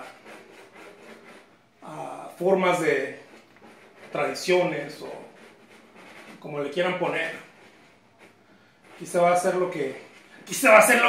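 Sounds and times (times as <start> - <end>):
pencil scratching on canvas: 0.0 - 11.0.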